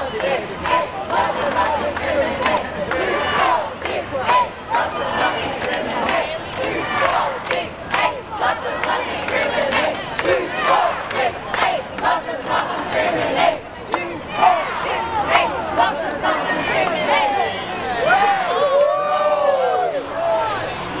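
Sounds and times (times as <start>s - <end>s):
crowd shouting: 0.0s - 21.0s.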